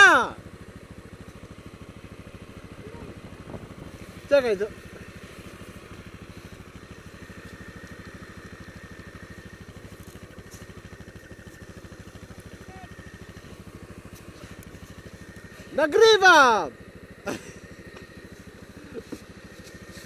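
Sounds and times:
quad bike engine chugging: 0.0s - 20.0s.

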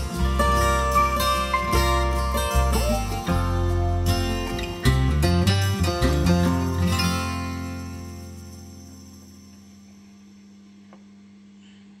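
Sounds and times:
acoustic guitar chord: 0.0s - 10.1s.

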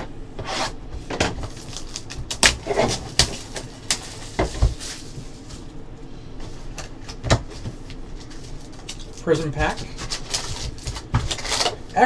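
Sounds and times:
foil pack crinkling: 1.4s - 5.7s, 6.8s - 11.9s.

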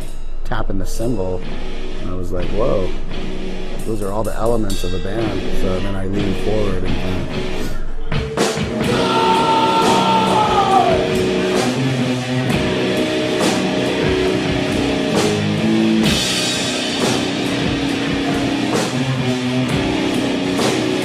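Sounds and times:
slow drums: 6.4s - 21.0s
distorted electric guitar: 8.6s - 21.0s.

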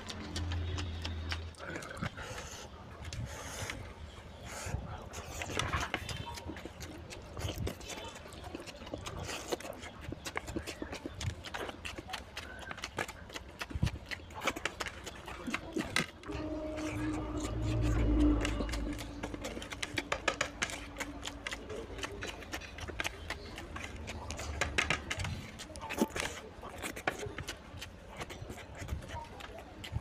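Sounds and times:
mouth clicks and smacks: 0.0s - 16.3s, 17.0s - 30.0s
person chewing food: 0.0s - 30.0s.

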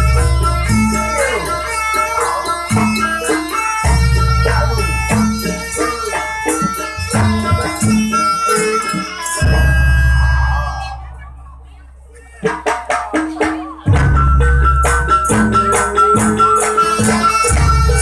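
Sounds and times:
gamelan metallophones and drum: 0.0s - 18.0s.

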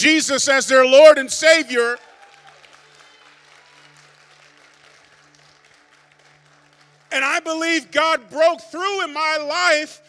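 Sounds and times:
faint applause: 1.7s - 7.7s.

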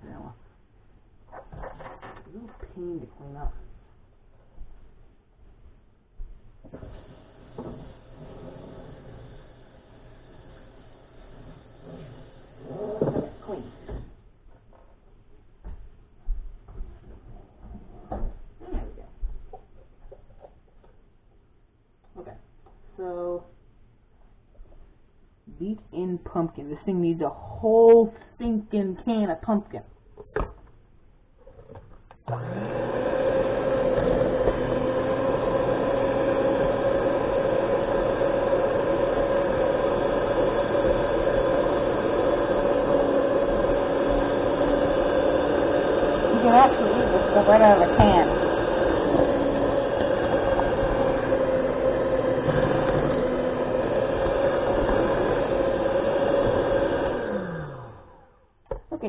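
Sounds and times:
electric mixer running: 6.7s - 14.1s, 32.2s - 58.3s.

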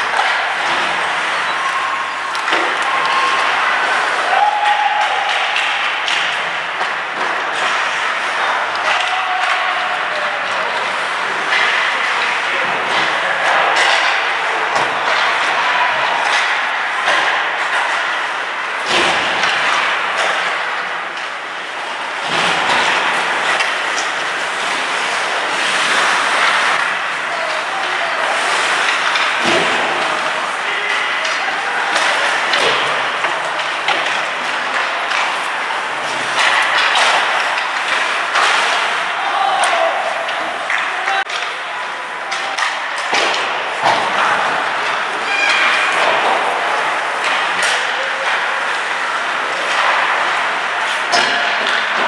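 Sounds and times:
players shouting: 0.0s - 18.2s, 22.0s - 52.0s
skates scraping on ice: 0.0s - 52.0s
sticks and puck clacking: 0.0s - 52.0s.

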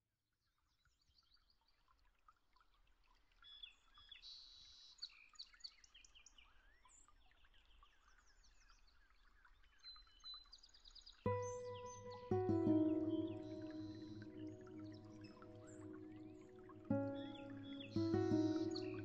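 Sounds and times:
small birds chirping and trilling: 7.5s - 19.0s.

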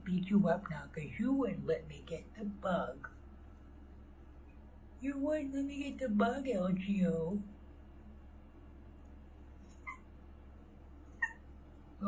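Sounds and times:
low room hum: 0.0s - 12.0s
cat squeaks: 9.6s - 10.1s, 11.1s - 11.4s.

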